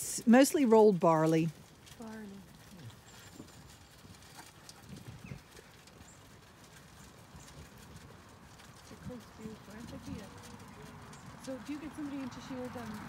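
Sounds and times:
sheep crunching feed: 0.0 - 13.0
soft knocks of hooves: 0.0 - 13.0.

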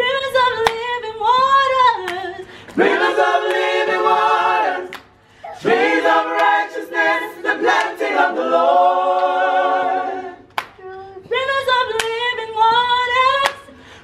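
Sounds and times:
choir singing a cappella: 1.9 - 10.6.

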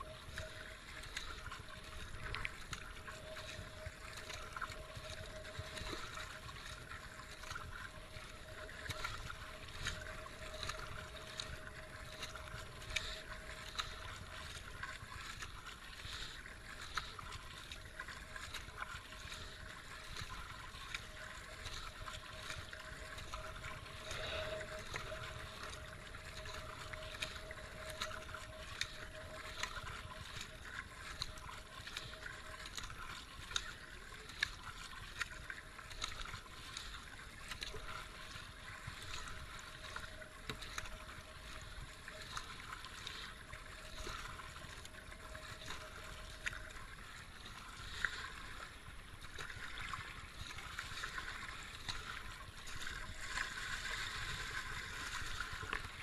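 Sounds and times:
faint steady tone: 0.0 - 56.0
kayak paddle strokes splashing: 0.0 - 56.0
water washing past hull: 0.0 - 56.0.

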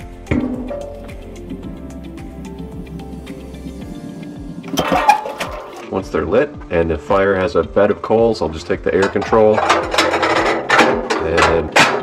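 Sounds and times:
background music: 0.0 - 12.0
metallic scraping and clunking: 4.5 - 6.0, 8.8 - 12.0.

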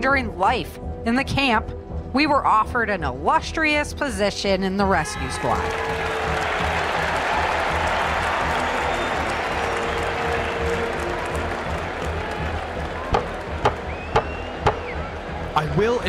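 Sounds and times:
crowd applauding and clamouring: 5.1 - 16.0
gavel knocks: 13.1 - 14.8.

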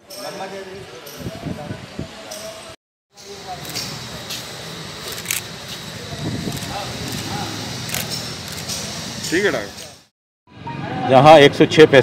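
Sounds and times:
sharp high clicks: 7.9 - 10.0.

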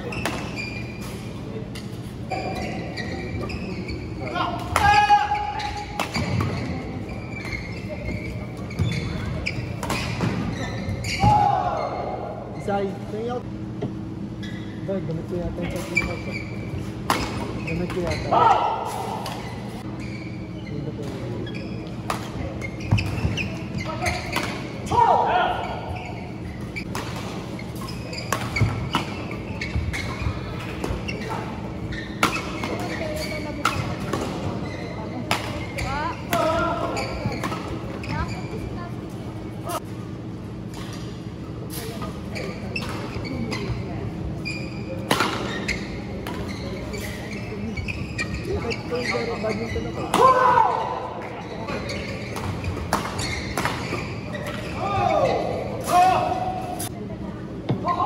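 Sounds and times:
voices: 0.0 - 13.4, 14.8 - 58.0.

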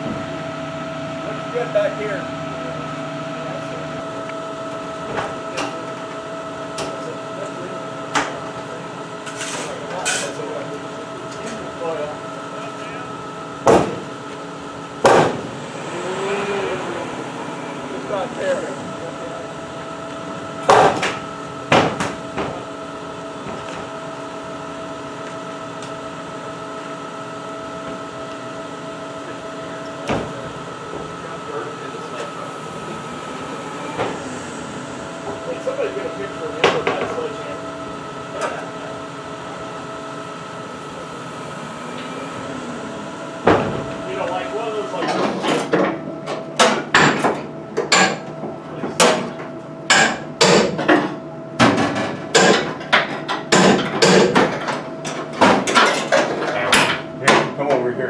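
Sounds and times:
mechanical hum with whine: 0.0 - 58.0.

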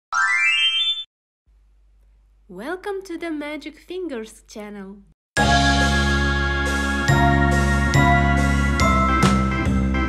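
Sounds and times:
rising cartoon tone: 0.1 - 1.1.

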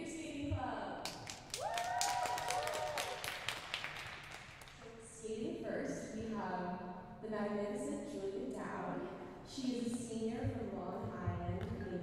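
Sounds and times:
spectators clapping: 1.0 - 4.8.

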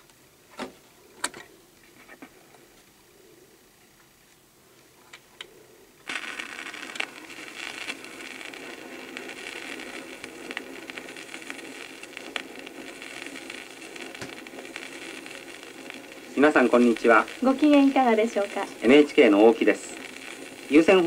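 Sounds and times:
record surface hiss and crackle: 0.0 - 21.0.

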